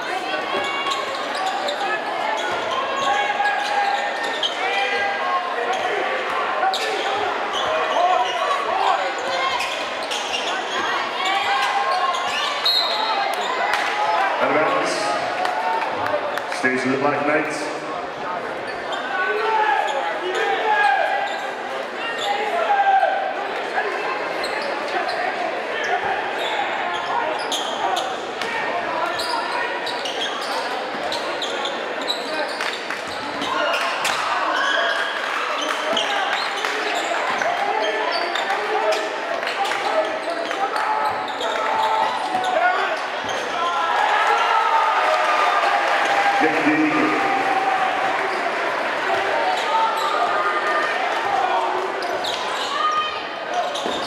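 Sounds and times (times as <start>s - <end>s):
crowd chattering: 0.0s - 54.0s.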